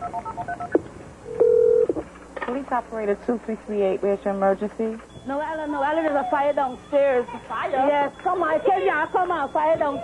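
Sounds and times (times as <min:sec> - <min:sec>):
telephone keypad beeps: 0:00.0 - 0:00.8
steady telephone line tone: 0:00.0 - 0:02.0, 0:04.7 - 0:10.0.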